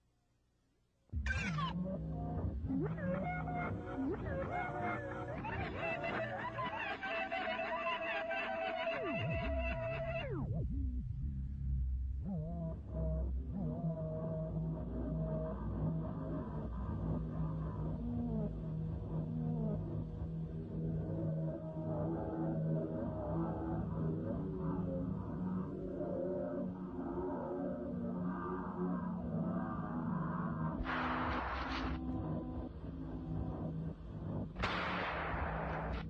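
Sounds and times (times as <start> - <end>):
music: 1.0 - 36.0.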